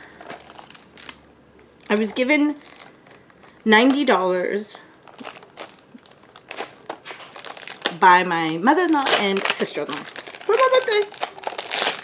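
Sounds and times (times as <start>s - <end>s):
packaging crinkling: 0.0s - 12.0s.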